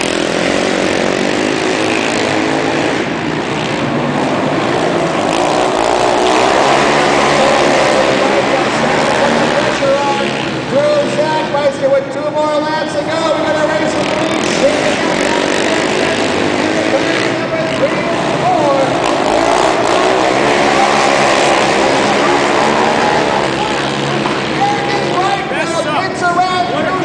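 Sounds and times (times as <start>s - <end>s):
quad engines revving: 0.0s - 27.0s.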